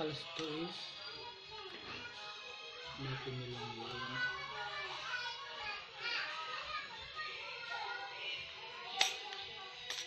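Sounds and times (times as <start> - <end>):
background music: 0.0 - 10.0
voices speaking or singing: 0.0 - 10.0.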